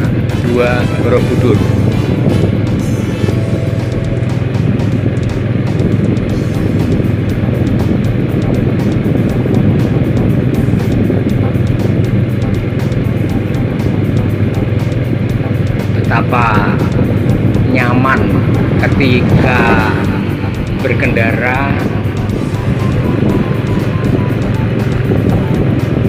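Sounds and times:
motorcycle engine hum: 0:00.0 - 0:26.0
music playing: 0:00.0 - 0:26.0
road noise: 0:00.0 - 0:26.0.

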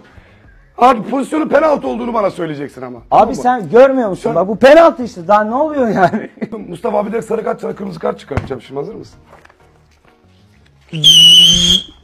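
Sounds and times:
referee's whistle blast: 0:10.9 - 0:12.0.

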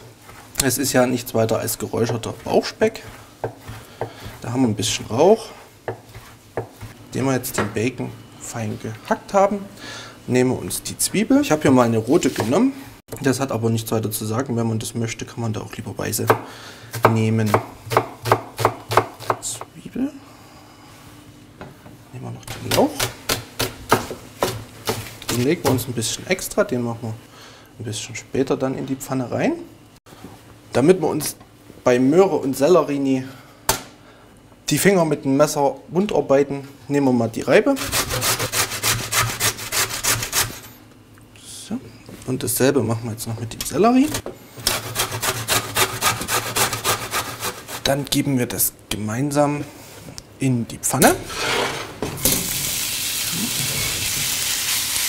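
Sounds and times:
knife chopping onion on board: 0:02.0 - 0:05.0, 0:05.8 - 0:07.7, 0:16.3 - 0:19.5, 0:22.5 - 0:25.9
vegetable grating on metal grater: 0:37.7 - 0:40.6, 0:44.7 - 0:48.0.

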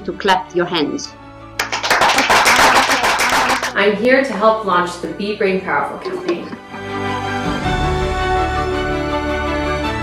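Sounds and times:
background music: 0:00.0 - 0:10.0
crowd applauding: 0:01.6 - 0:03.7.

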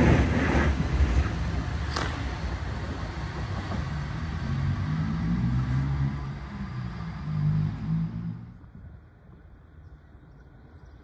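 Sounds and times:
train motor hum: 0:00.0 - 0:09.7
electric train rumbling away: 0:00.0 - 0:11.0.

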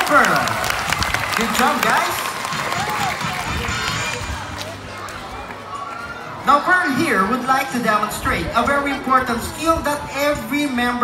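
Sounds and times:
audience applauding: 0:00.0 - 0:04.7.

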